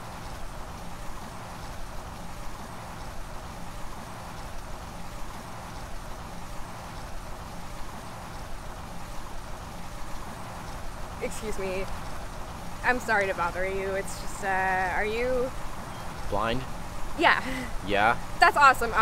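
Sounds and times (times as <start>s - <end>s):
faint low hum: 0.0s - 19.0s
outdoor background noise: 0.0s - 19.0s.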